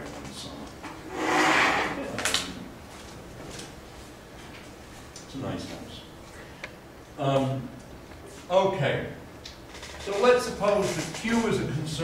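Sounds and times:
scraping sliding sound: 0:01.1 - 0:02.0.

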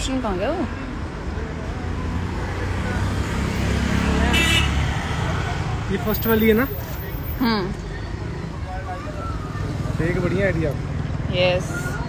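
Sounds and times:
car passing: 0:00.0 - 0:07.1
road traffic engine rumble: 0:00.0 - 0:12.0
motorbike passing: 0:01.4 - 0:06.6.

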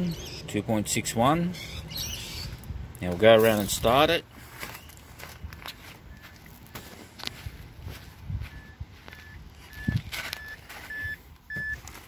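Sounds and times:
footsteps: 0:03.4 - 0:12.0
car warning chime beeping: 0:08.4 - 0:11.8.

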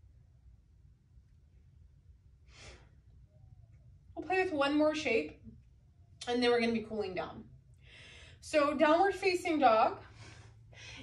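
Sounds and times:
low steady hum: 0:00.0 - 0:11.0
soft breath: 0:07.8 - 0:08.4, 0:10.0 - 0:11.0.

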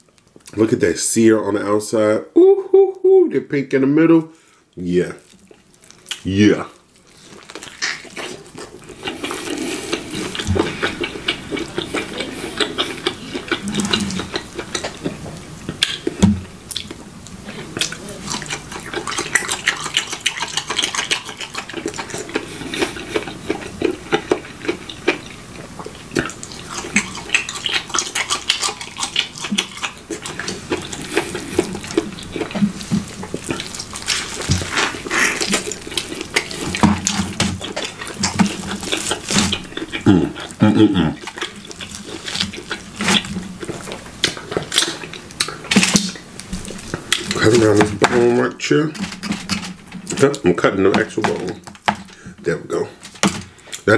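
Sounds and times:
wet chewing and lip smacking: 0:05.2 - 0:48.3
sticky mouth clicks: 0:07.7 - 0:17.0.

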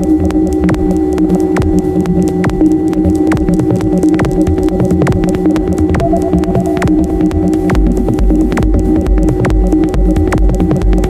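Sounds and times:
dark techno track: 0:00.0 - 0:11.0
electronic drone hum: 0:00.0 - 0:11.0
sharp percussive clicks: 0:00.0 - 0:11.0.

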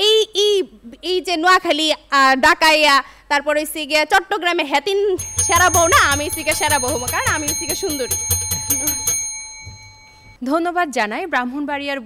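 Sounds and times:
bell ringing rapidly: 0:05.2 - 0:10.4.

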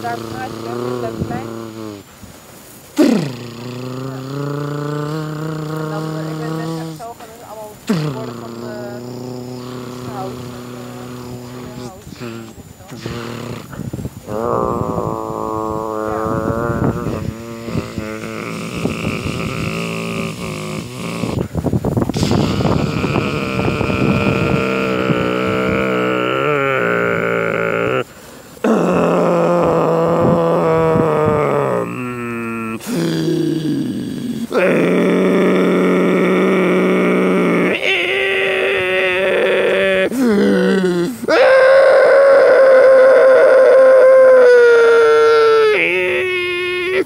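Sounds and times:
person groaning and grunting: 0:00.0 - 0:02.1, 0:03.0 - 0:21.5, 0:22.2 - 0:47.0.

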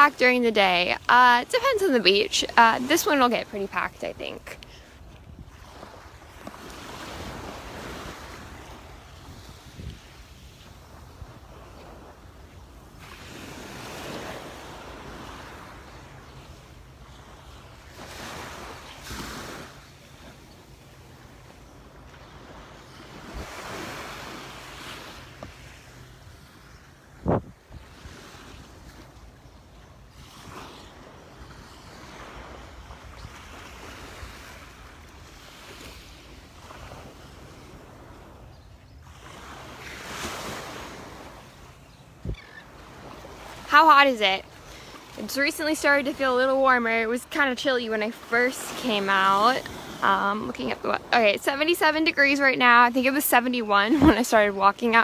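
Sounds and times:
wind buffeting microphone: 0:00.0 - 0:06.4, 0:07.1 - 0:12.8, 0:27.1 - 0:29.0
waves washing on sandy shore: 0:00.0 - 0:55.0.

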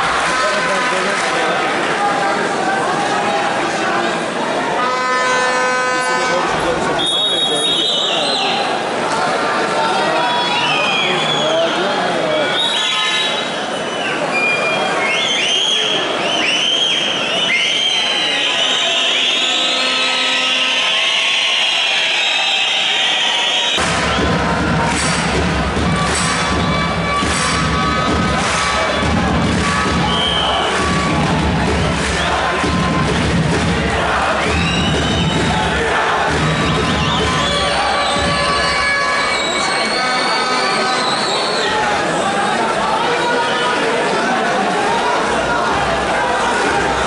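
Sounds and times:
crowd shouting and cheering: 0:00.0 - 0:47.0
crowd whistling: 0:04.9 - 0:08.8, 0:10.0 - 0:44.4
steady beat: 0:23.8 - 0:39.2.

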